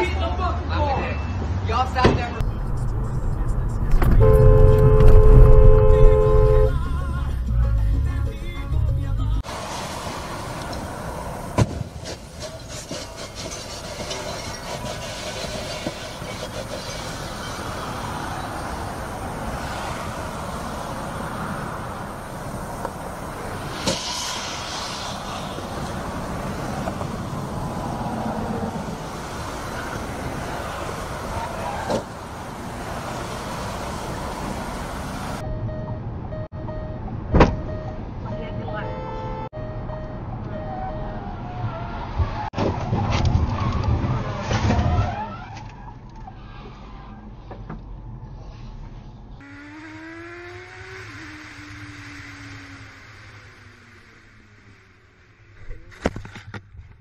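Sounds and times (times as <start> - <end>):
freeway traffic: 0.0 - 57.0.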